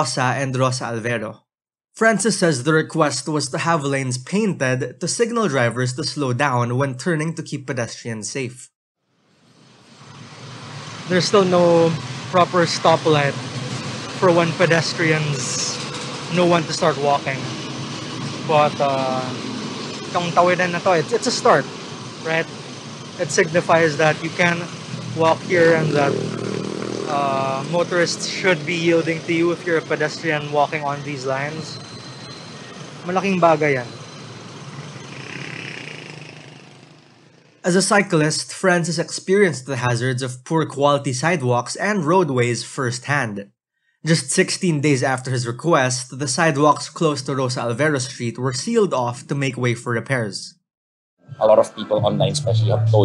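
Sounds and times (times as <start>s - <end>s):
street traffic noise: 9.0s - 38.2s.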